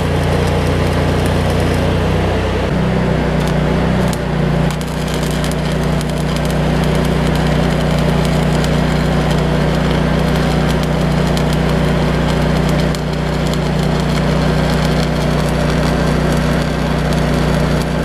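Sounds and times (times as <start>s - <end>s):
welding arc crackling: 0.0s - 18.0s.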